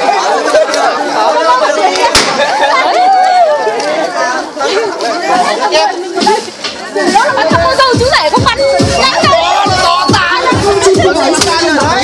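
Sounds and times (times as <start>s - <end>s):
crowd chatter: 0.0s - 12.0s
people laughing: 0.0s - 12.0s.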